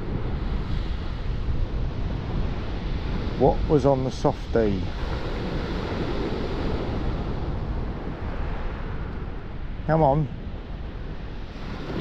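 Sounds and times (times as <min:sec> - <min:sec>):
sea surf on shingle beach: 0:00.0 - 0:12.0
wind rumble on microphone: 0:00.0 - 0:12.0.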